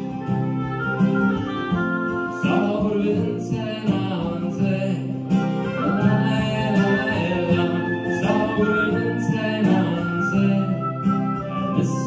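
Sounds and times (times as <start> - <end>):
oboe melody: 0.0 - 12.0
strummed acoustic guitar: 0.0 - 12.0.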